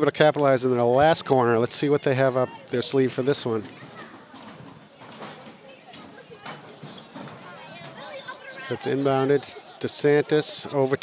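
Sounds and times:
distant voices outdoors: 0:00.0 - 0:11.0.

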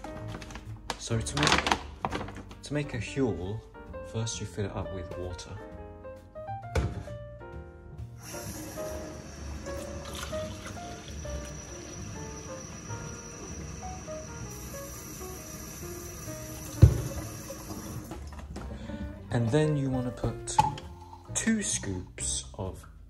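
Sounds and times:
background music: 0:00.0 - 0:23.0
tap running water into cup: 0:08.2 - 0:18.6.

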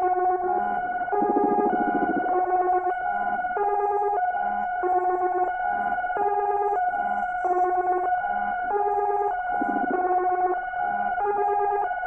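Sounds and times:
synthesizer electronica: 0:00.0 - 0:03.0, 0:09.6 - 0:10.6
buzzy pulsing low tone: 0:01.1 - 0:02.5.

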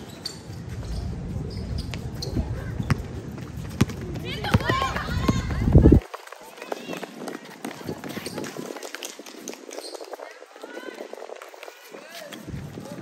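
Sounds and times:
footsteps on hard court: 0:01.8 - 0:10.3
girls calling out: 0:04.2 - 0:06.0.

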